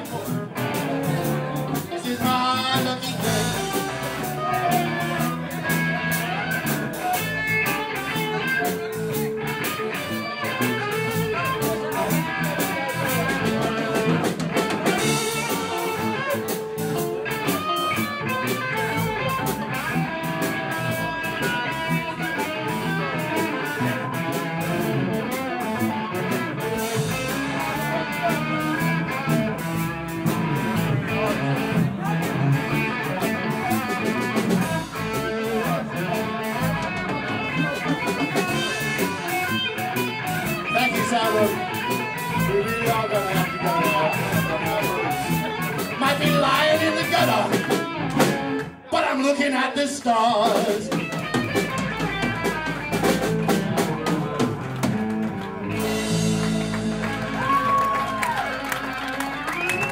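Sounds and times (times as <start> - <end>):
drum kit: 0.0 - 48.8, 50.3 - 59.9
bass guitar: 0.0 - 59.9
electric guitar lead: 0.0 - 59.9.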